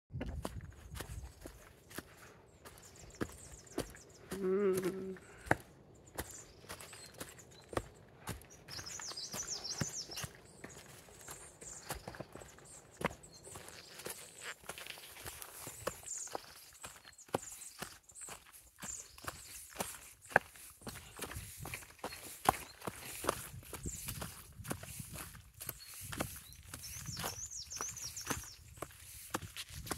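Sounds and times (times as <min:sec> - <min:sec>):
shoes clicking on stone: 0:03.2 - 0:23.5
footsteps crunching dry leaves: 0:06.1 - 0:29.9.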